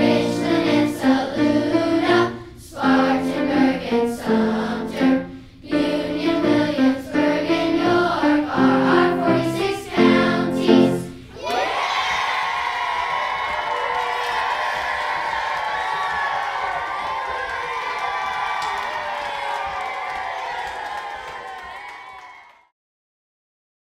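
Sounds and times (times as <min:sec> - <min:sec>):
children's choir with piano: 0:00.0 - 0:11.4
children cheering and shouting: 0:11.3 - 0:22.7.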